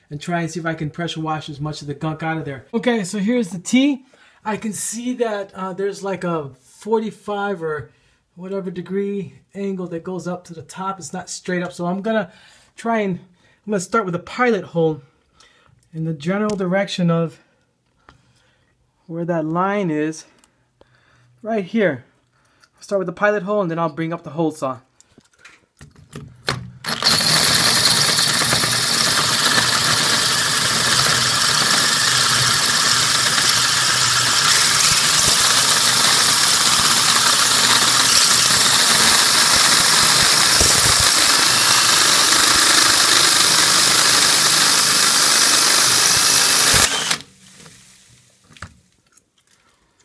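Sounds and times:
drill with hole saw cutting plastic: 0:26.8 - 0:47.4.

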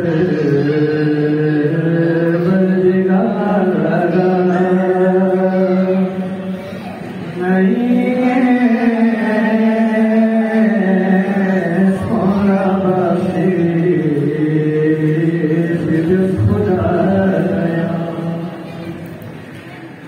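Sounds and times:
person chanting devotional song: 0:00.0 - 0:19.8.

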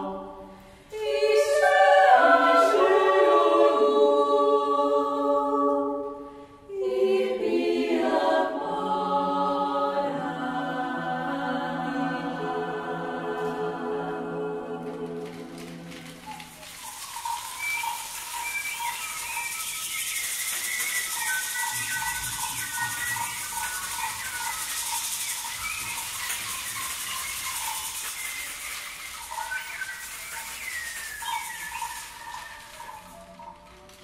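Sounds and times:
rainstick shaking hiss: 0:14.6 - 0:34.0
whistled bird-like chirps: 0:15.9 - 0:34.0.

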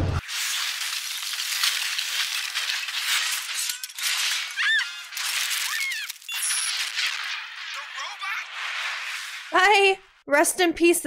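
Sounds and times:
water spraying and ice crackling: 0:00.2 - 0:10.2.

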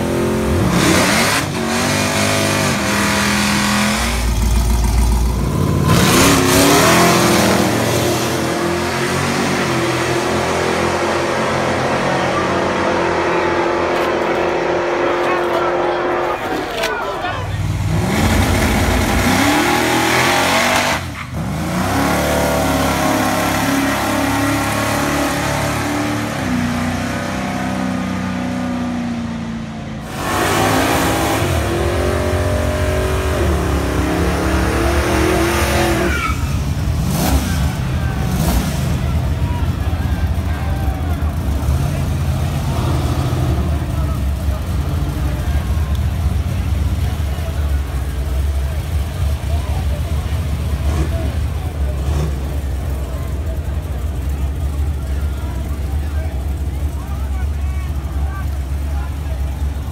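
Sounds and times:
car engines revving and accelerating: 0:00.0 - 0:59.9
crowd voices: 0:00.0 - 0:59.9.

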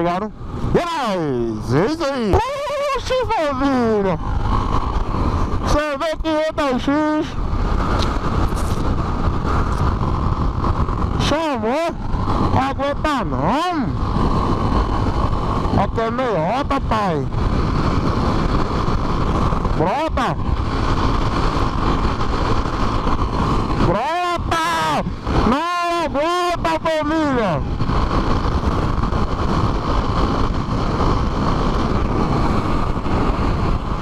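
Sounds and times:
motorcycle engine running: 0:00.0 - 0:34.0
wind rushing over microphone: 0:00.0 - 0:34.0
person shouting: 0:02.1 - 0:03.9, 0:24.0 - 0:26.4.

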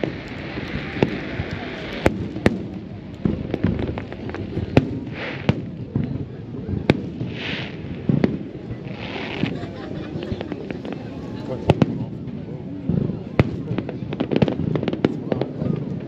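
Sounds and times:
fireworks hisses: 0:00.0 - 0:11.9
fireworks bangs: 0:00.0 - 0:16.0
fireworks crackles: 0:00.0 - 0:16.0.

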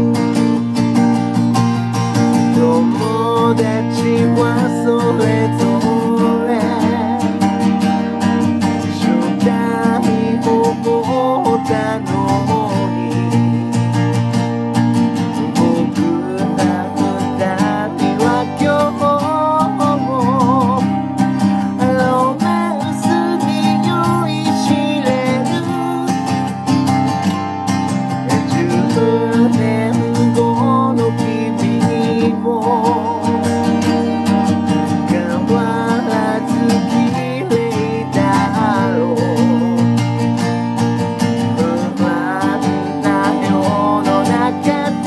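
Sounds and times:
acoustic guitar strumming: 0:00.0 - 0:45.0
person singing with vibrato: 0:02.2 - 0:45.0.

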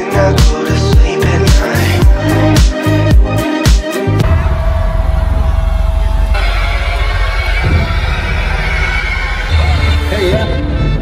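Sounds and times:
live music with heavy bass: 0:00.0 - 0:11.0.

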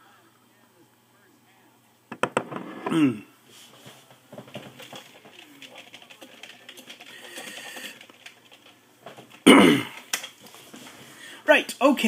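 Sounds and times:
sharp knocks: 0:02.1 - 0:02.8
man clearing throat: 0:02.9 - 0:03.3, 0:09.4 - 0:10.0.

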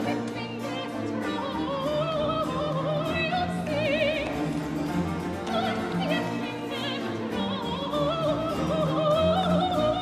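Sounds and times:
woman singing opera: 0:00.0 - 0:04.6, 0:05.2 - 0:10.0
baroque orchestra bowed strings: 0:00.0 - 0:10.0.

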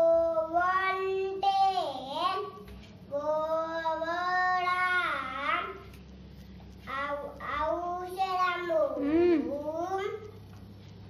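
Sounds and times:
child singing: 0:00.0 - 0:05.9, 0:06.9 - 0:10.3.

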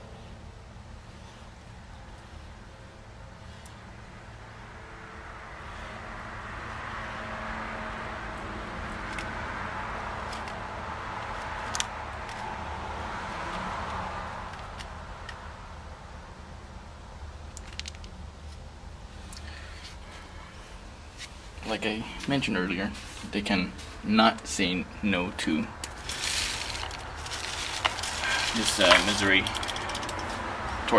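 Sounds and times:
traffic rumble: 0:00.0 - 0:30.9
tortoise crunching pellets: 0:17.5 - 0:20.2, 0:25.4 - 0:30.9.

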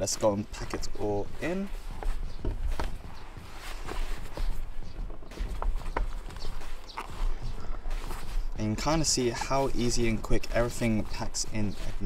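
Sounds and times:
items knocking and clicking: 0:02.0 - 0:03.2.

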